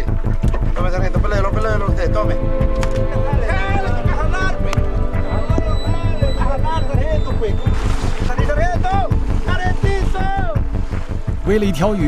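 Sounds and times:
boat motor running: 0.0s - 11.5s.

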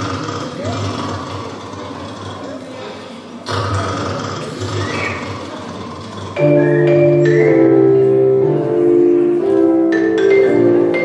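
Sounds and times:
murmur of audience: 0.0s - 11.0s.

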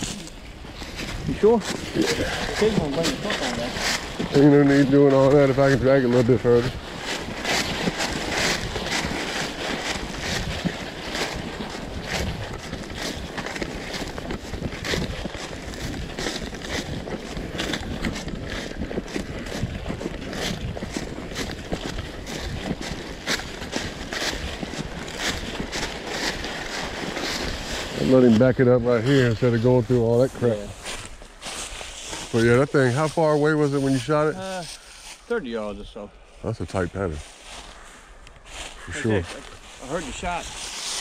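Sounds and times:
footsteps crunching through dry leaves: 0.0s - 41.0s.

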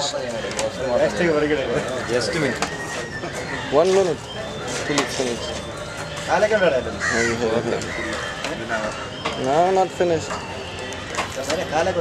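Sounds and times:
people's voices: 0.0s - 12.0s
crows cawing: 1.7s - 5.3s, 6.8s - 9.4s.

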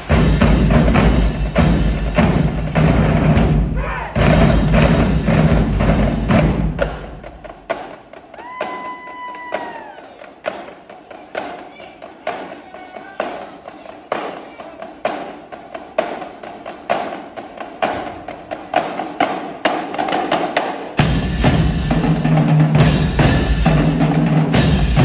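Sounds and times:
drumline sharp taps and clicks: 0.0s - 25.0s.

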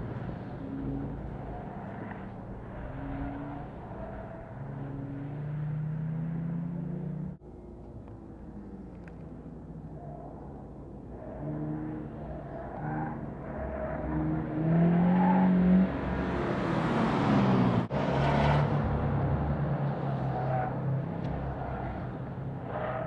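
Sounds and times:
car engines revving past: 0.0s - 7.4s, 8.0s - 23.0s.

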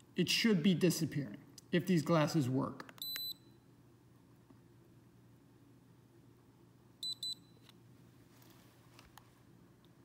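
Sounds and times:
short high beeps: 3.0s - 3.6s, 7.0s - 7.6s.

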